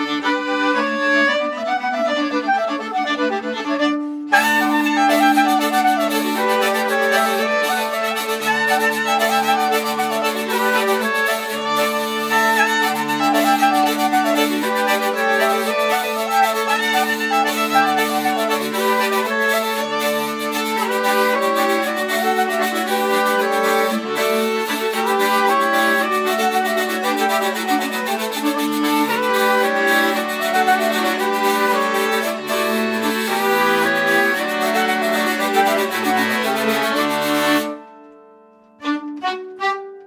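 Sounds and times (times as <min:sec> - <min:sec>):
folk quartet playing over a drone: 0:00.0 - 0:37.9.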